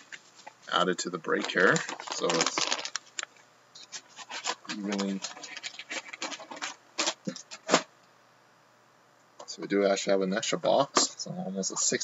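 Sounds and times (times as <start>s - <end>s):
plastic shrink-wrap crinkling: 0.0s - 7.9s.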